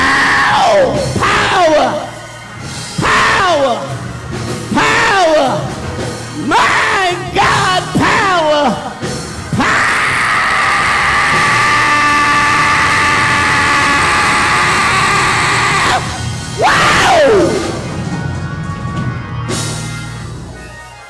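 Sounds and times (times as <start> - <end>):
backing music: 0.0 - 21.0
preacher crying into microphone: 9.6 - 17.7.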